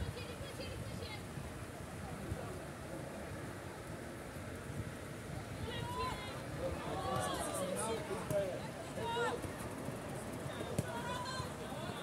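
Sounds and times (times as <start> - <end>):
faint outdoor ambience: 0.0 - 12.0.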